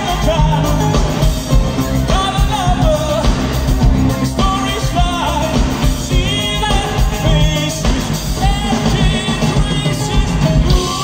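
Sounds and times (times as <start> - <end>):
live synth-pop band: 0.0 - 11.0
man singing: 0.0 - 11.0.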